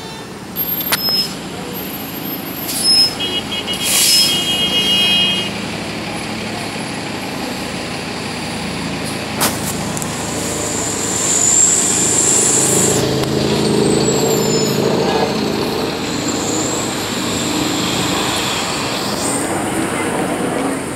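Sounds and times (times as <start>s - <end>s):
bus engine running under load: 0.0s - 20.9s
high-pitched whine: 8.8s - 20.9s.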